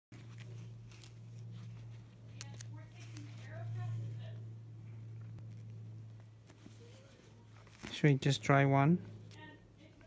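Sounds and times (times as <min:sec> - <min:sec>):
steady low hum: 0:00.1 - 0:10.0
patch and paper crinkling: 0:00.2 - 0:04.4, 0:05.0 - 0:08.2.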